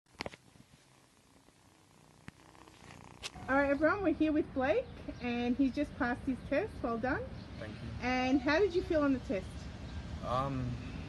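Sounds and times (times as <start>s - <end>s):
kitten purring: 0.1s - 3.9s.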